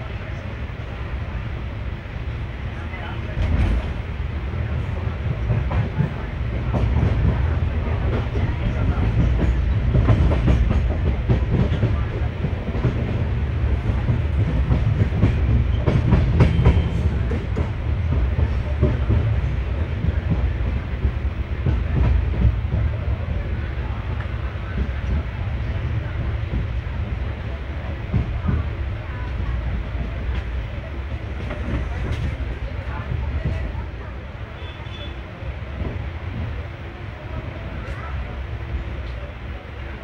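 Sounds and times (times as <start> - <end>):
train rumble from aboard: 0.0 - 40.0
wheels clattering on rails: 4.8 - 23.2.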